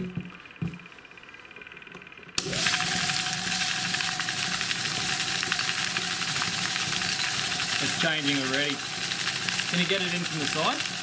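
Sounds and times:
motor steady tone: 0:00.0 - 0:11.0
pellets and water rattling in barrel: 0:03.9 - 0:11.0.

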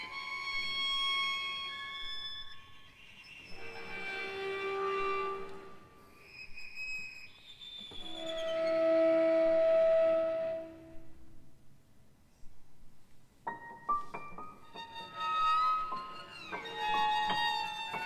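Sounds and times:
violin and cello sustained notes: 0:00.0 - 0:11.2, 0:14.6 - 0:18.0.

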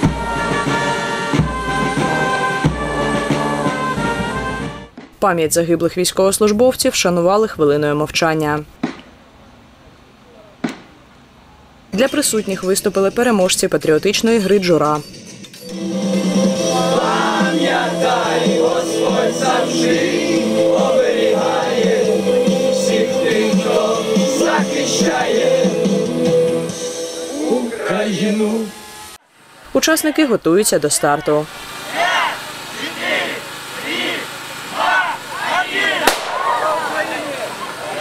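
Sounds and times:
group singing in unison: 0:00.0 - 0:04.2, 0:15.7 - 0:26.8, 0:27.6 - 0:29.0.

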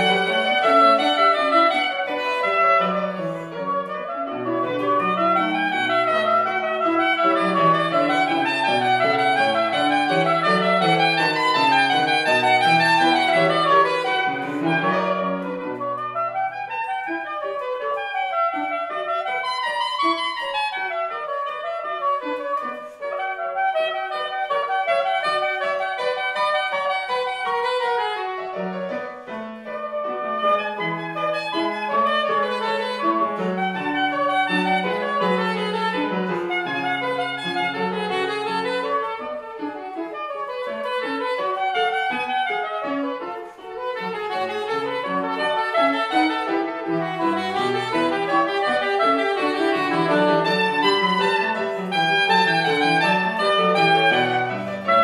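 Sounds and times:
piano accompaniment: 0:00.0 - 0:55.0
soprano saxophone: 0:00.0 - 0:55.0.

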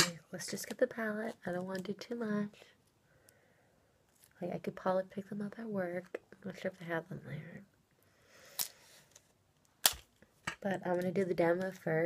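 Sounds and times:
faint rustle of objects: 0:00.2 - 0:04.5, 0:07.3 - 0:10.7.

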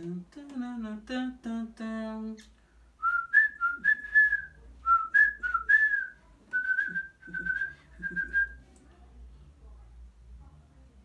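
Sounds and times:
man whistling a tune: 0:03.0 - 0:08.6.

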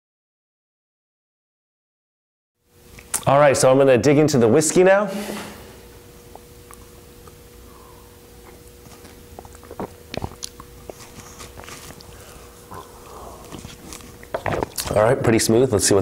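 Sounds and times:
faint steady hum: 0:02.6 - 0:16.0
sipping mouth sounds: 0:06.2 - 0:14.9.

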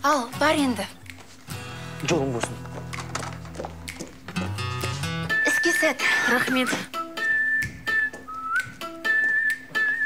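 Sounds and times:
whistled melody: 0:05.0 - 0:10.0.

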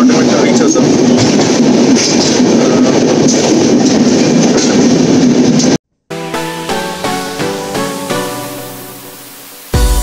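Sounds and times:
moving train running noise: 0:00.0 - 0:10.0.

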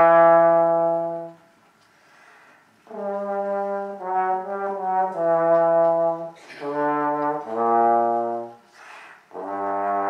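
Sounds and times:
trombone long low note: 0:00.0 - 0:01.4, 0:02.9 - 0:08.6.

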